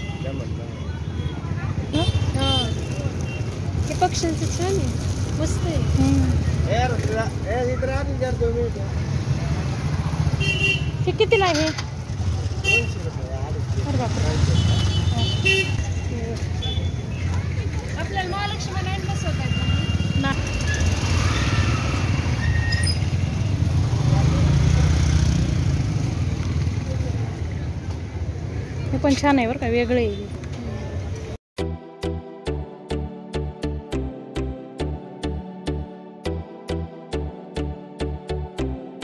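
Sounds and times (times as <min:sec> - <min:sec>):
street traffic rumble: 0:00.0 - 0:31.4.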